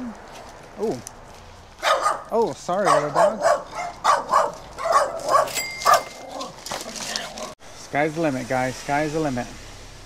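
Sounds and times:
small dog barking: 1.8s - 6.5s.

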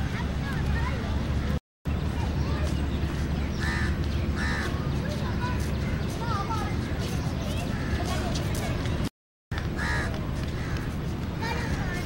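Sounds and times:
bird calling: 2.2s - 9.0s, 9.6s - 12.0s.

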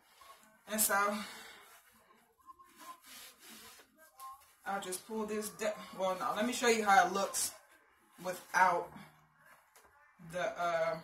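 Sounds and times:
clothing rustling: 0.0s - 9.9s.

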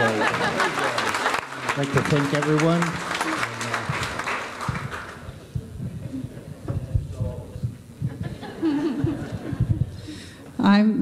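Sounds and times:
congregation applause: 0.0s - 5.5s
low knocks and thumps: 3.8s - 10.0s.

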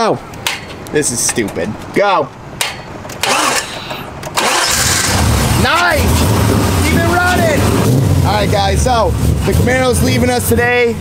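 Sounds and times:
car engine cranking and idling: 2.5s - 11.0s.

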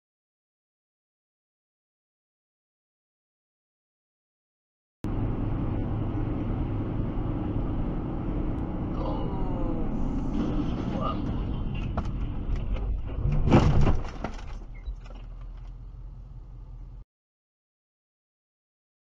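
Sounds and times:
car road and engine rumble: 5.0s - 17.0s.

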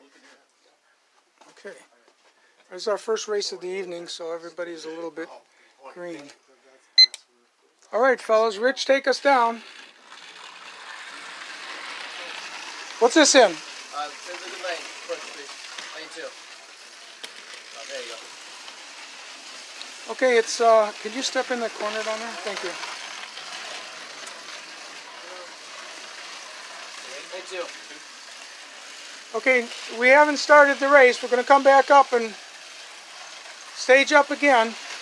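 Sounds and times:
slot car electric motors whirring: 9.0s - 35.0s.

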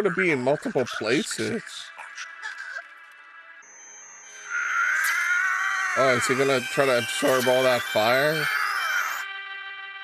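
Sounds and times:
thin high whine: 3.6s - 9.2s.

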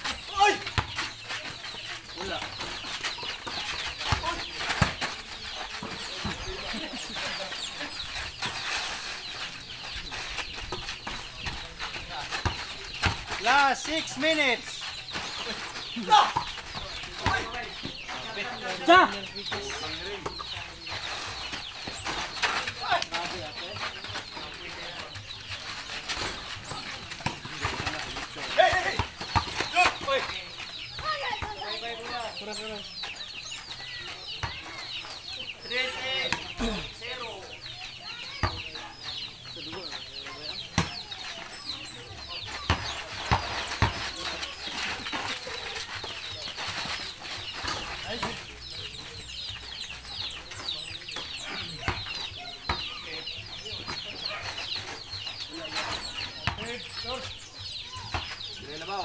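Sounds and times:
birds chirping: 0.0s - 59.0s
basketball thudding: 42.6s - 44.4s.

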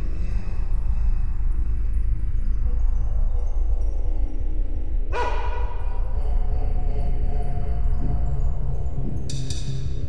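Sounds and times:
low drone: 0.0s - 10.0s
tense film music: 0.0s - 10.0s.

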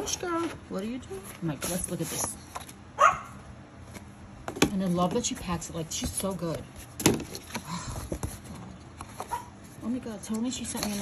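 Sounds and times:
paper and plastic rustling: 0.0s - 2.8s, 4.8s - 11.0s.

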